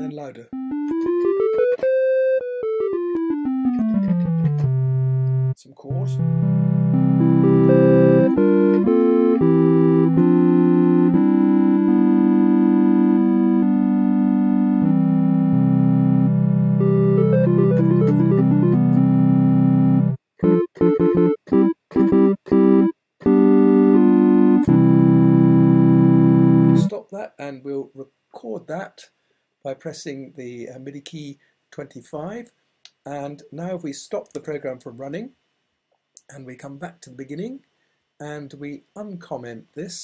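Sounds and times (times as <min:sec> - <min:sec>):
triangle-wave synth chords: 0:00.5 - 0:26.9.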